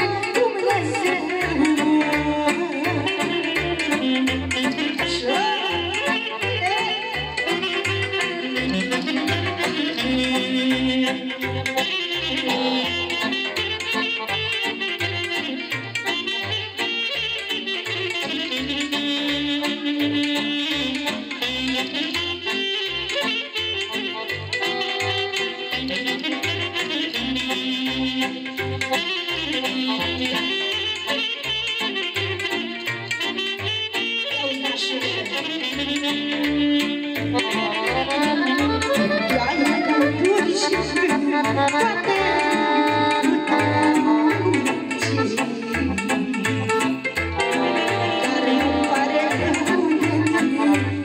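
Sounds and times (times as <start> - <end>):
electronic keyboard with bass beat: 0.0 - 51.0
saxophone melody: 0.0 - 51.0.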